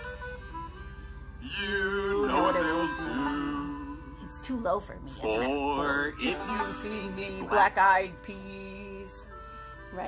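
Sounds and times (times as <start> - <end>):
instrumental backing music: 0.0 - 10.0
man singing children's song: 1.4 - 3.9, 5.2 - 8.6.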